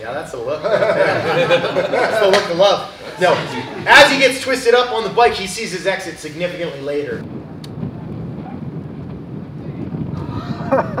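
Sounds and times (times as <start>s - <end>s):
person speaking: 0.7s - 7.2s
wind rumbling on microphone: 6.4s - 11.0s.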